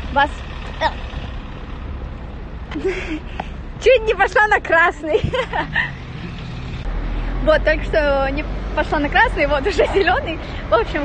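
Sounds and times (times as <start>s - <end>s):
city traffic hum: 0.0s - 11.0s.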